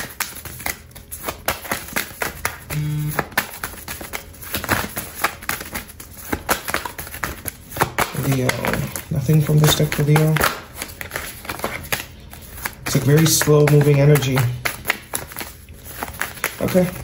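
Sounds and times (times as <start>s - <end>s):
cards being shuffled: 0.0s - 17.0s.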